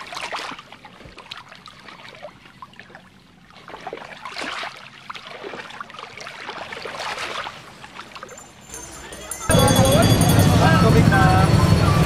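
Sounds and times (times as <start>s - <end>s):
small waves washing on beach: 0.0s - 8.7s.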